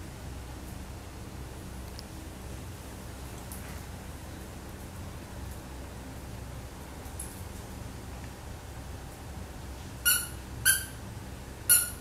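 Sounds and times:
squeaky dog toy squeaking: 10.0 - 11.0, 11.7 - 12.0.

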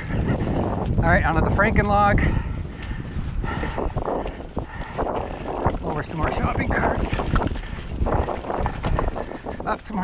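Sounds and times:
bike rattling: 0.0 - 10.0.

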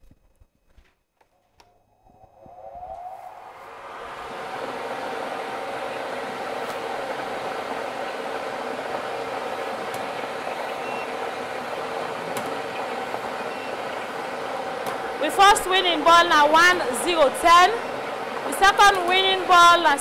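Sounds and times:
blower whir and hum: 1.5 - 20.0.

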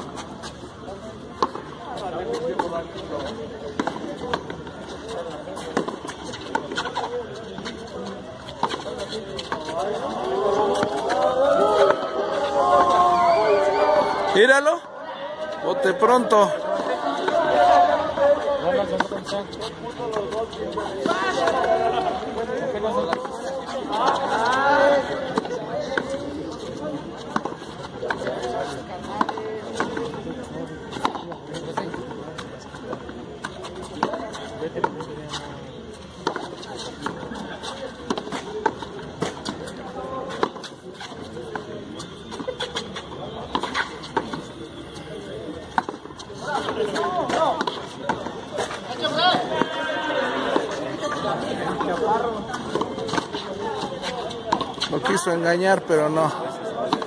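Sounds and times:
people chattering: 0.0 - 57.0.

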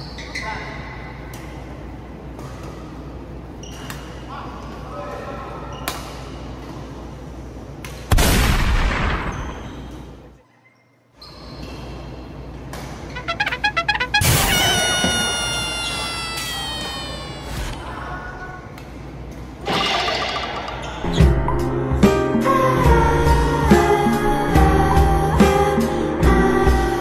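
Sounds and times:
shoes squeaking on court: 9.3 - 12.3, 13.0 - 17.6
loud brass-like chord: 13.2 - 14.4
loud crash: 13.4 - 15.2.

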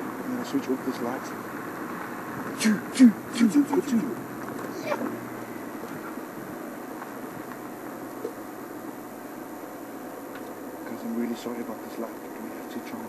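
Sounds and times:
vehicle engine running: 0.0 - 13.0.

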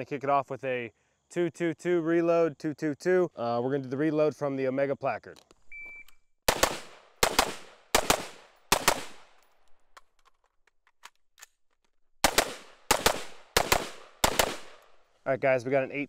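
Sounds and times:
rifle shots: 6.5 - 9.4, 12.2 - 15.0.

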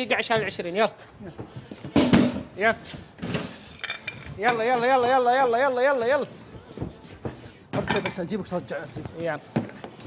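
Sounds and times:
cookware clattering on counter: 7.8 - 8.2.

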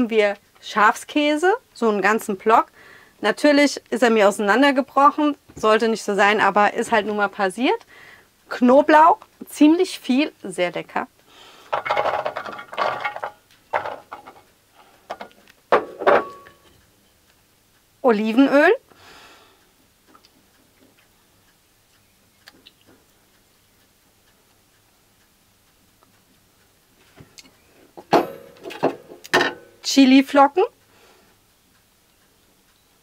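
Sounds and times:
garlic cloves clattering on metal tray: 11.7 - 14.5
kitchen items knocking on counter: 15.1 - 16.6
metal tray ringing: 15.8 - 16.7, 28.0 - 29.8.

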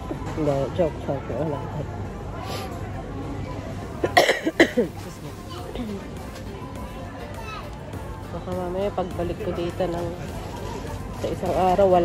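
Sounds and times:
woman coughing: 4.0 - 5.0.

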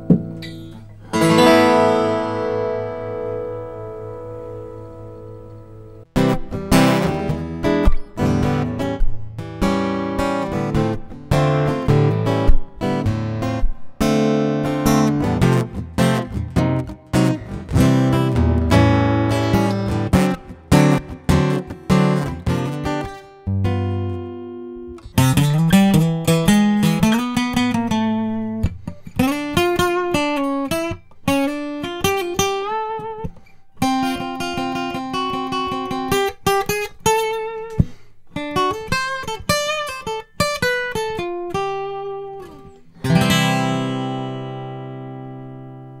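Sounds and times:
acoustic guitar playing: 0.0 - 46.0.

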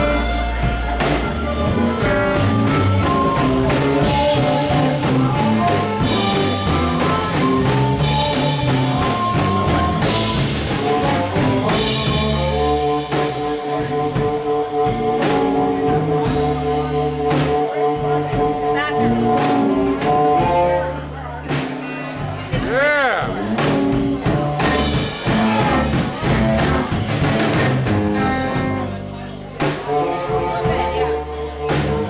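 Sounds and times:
amplified harmonica solo: 0.0 - 21.2
drums: 0.0 - 32.0
electric guitar: 0.0 - 32.0.

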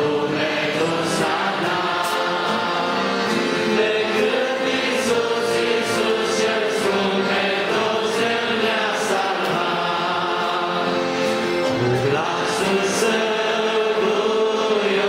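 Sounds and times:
congregation singing a hymn: 0.0 - 15.0.

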